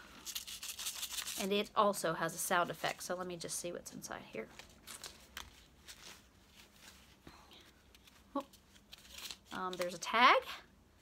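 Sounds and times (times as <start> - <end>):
package being opened: 0.2 - 1.4, 7.9 - 10.0.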